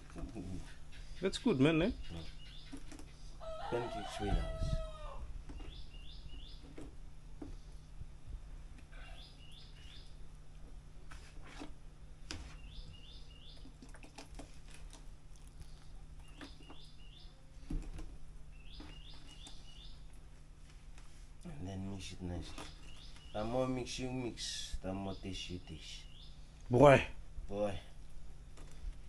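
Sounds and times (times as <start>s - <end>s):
small bird chirping: 0.3s - 3.4s, 5.5s - 6.9s, 8.9s - 10.2s, 12.4s - 14.0s, 15.4s - 17.4s, 18.5s - 20.2s, 22.4s - 23.6s, 25.1s - 26.5s.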